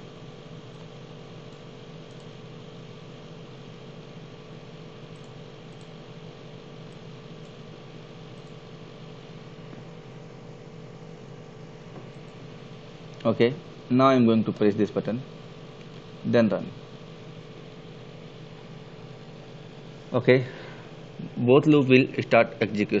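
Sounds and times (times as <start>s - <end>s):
background hum and hiss: 0.0s - 23.0s
faint steady tones: 0.0s - 23.0s.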